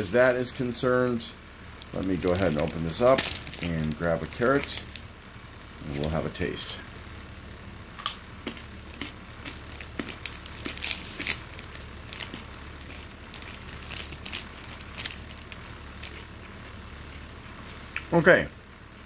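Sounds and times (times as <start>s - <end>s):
low steady hum: 0.0s - 19.0s
plastic bag crinkling: 1.8s - 5.1s, 9.5s - 16.4s.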